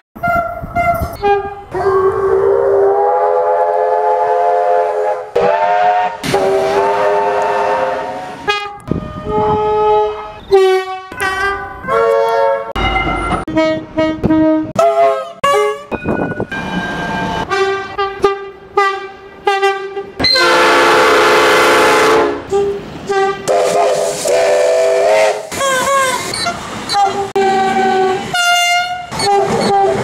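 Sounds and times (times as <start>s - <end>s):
train air horn blasts: 0.2s - 12.8s, 13.5s - 30.0s.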